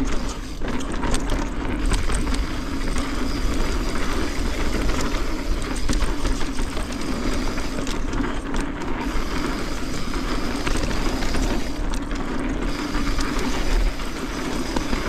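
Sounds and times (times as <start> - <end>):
bike clicks and rattles: 0.0 - 15.0
bike tyres rumbling on dirt: 0.0 - 15.0.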